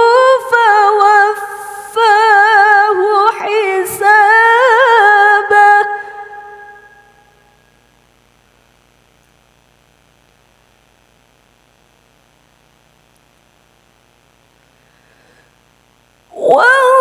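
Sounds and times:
faint room hum: 0:00.0 - 0:17.0.

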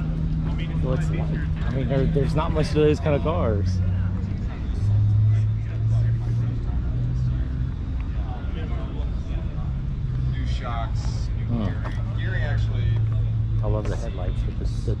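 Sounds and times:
low engine drone: 0:00.0 - 0:15.0
people talking in background: 0:00.0 - 0:15.0.

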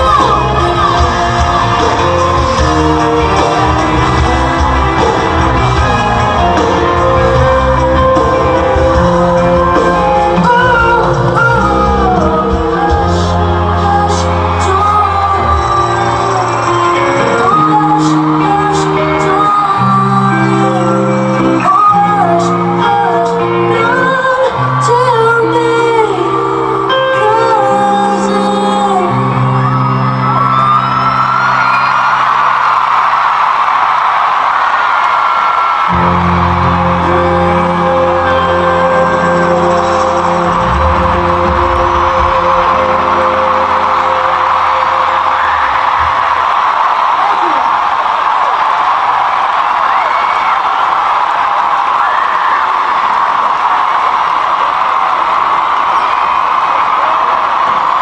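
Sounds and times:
crowd cheering and screaming: 0:00.0 - 0:58.0
live rock band: 0:00.0 - 0:58.0.

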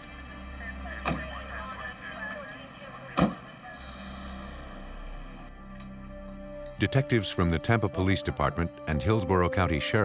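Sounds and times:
steady low hum: 0:00.0 - 0:06.9.

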